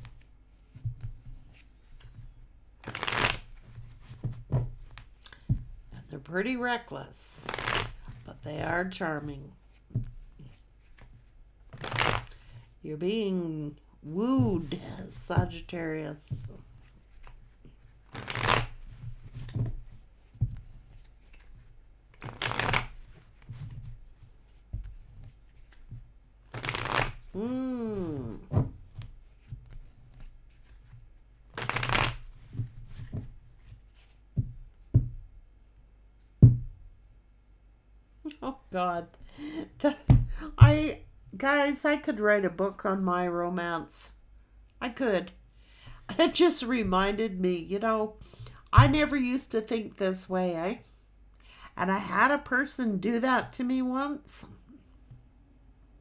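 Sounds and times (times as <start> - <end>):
cards shuffling rush: 0.0 - 5.7, 7.4 - 8.2, 10.0 - 12.6, 16.5 - 27.4, 28.3 - 34.2
cards riffling: 2.8 - 3.7, 10.5 - 12.5, 18.1 - 19.6, 20.9 - 23.1, 26.5 - 27.4, 31.5 - 32.4
soft taps of cards: 3.6 - 5.8, 9.8 - 11.3, 18.9 - 26.9.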